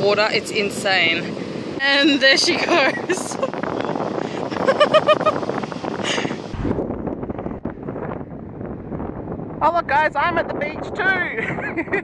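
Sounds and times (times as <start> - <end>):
wind buffeting microphone: 0.0 - 12.0
people laughing: 4.5 - 5.4.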